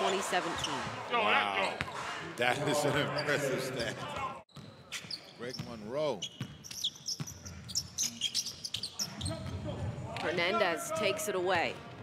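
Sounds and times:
sneakers squeaking: 0:00.0 - 0:02.2, 0:03.1 - 0:09.7.

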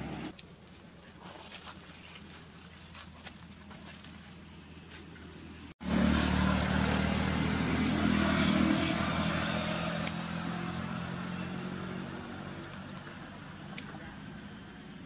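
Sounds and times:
vehicle engine passing: 0:05.8 - 0:15.0.

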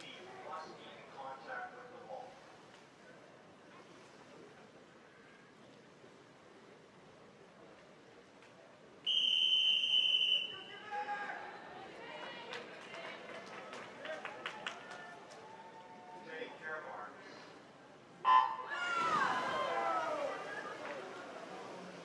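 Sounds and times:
voices echoing in pool hall: 0:00.0 - 0:05.6, 0:09.1 - 0:22.0
referee whistle long blast: 0:09.1 - 0:10.7, 0:18.3 - 0:18.8.

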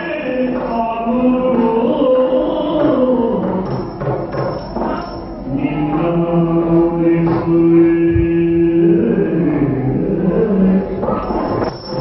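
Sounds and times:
person singing a long note: 0:05.5 - 0:11.3.

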